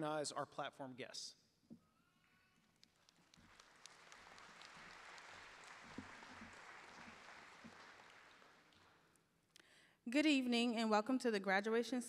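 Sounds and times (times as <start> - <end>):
faint audience applause: 2.6 - 9.1.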